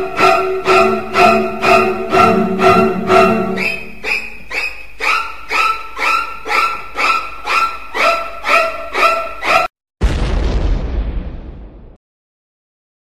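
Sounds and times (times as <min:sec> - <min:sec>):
short pitched musical hits: 0:00.0 - 0:04.3
loud boom with deep rumble: 0:10.0 - 0:12.0.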